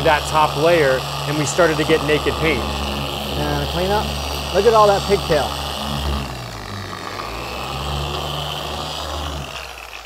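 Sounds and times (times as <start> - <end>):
polisher humming: 0.0 - 10.0.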